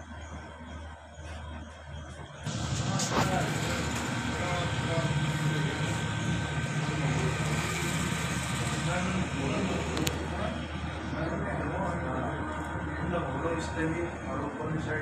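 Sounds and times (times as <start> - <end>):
steady low hum: 0.0 - 15.0
murmur of men's voices: 2.5 - 15.0.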